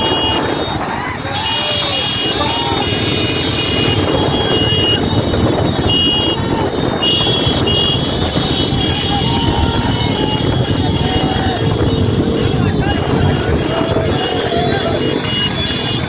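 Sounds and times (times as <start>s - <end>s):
men shouting: 0.0s - 5.0s, 8.2s - 16.0s
motorcycle engines running: 0.0s - 16.0s
wind noise on microphone: 0.0s - 16.0s.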